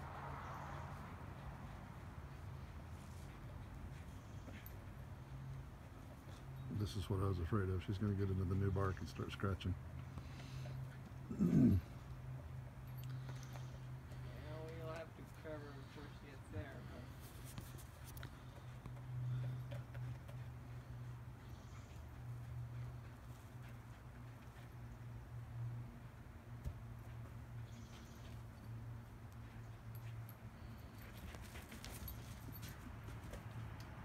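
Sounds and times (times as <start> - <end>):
dog paws and ball thuds: 26.5 - 27.4.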